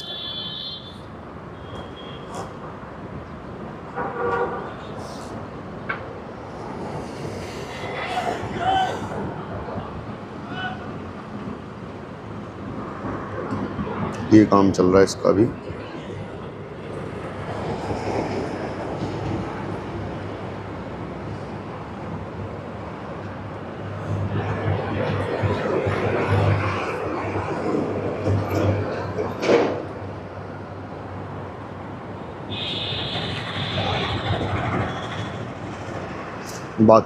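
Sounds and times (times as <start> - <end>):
aircraft high whine: 0.0 - 37.0
airplane flying over: 0.0 - 37.0
aircraft low rumble: 23.2 - 31.4.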